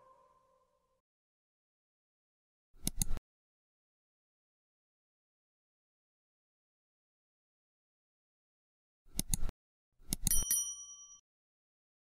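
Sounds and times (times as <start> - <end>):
bright bell ding: 10.3 - 11.2.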